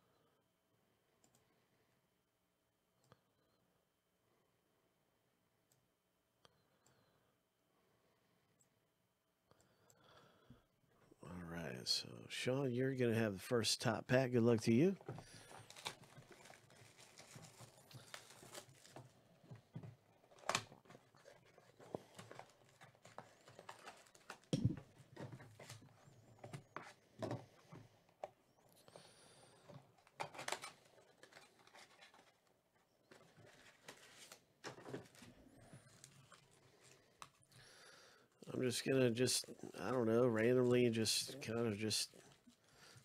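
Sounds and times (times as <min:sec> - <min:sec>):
cardboard box and packs rustling: 0:15.0 - 0:27.1, 0:29.8 - 0:37.5.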